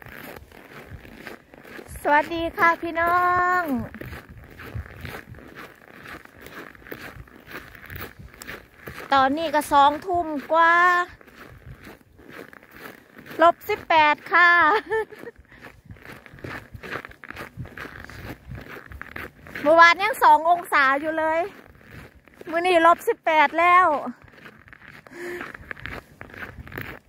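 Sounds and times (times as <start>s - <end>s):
footsteps crunching in snow: 0.0s - 27.0s.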